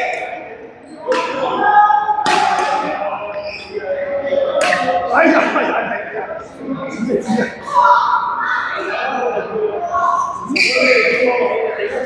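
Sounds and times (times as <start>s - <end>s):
racket striking shuttlecock: 2.2s - 2.9s.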